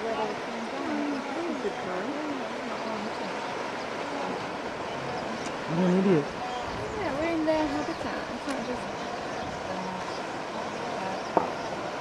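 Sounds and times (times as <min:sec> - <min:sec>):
river water splashing: 0:00.0 - 0:12.0.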